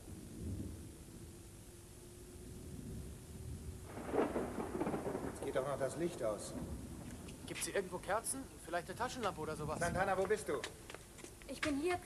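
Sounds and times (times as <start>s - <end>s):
thunder rumbling and crashing: 2.9s - 7.0s.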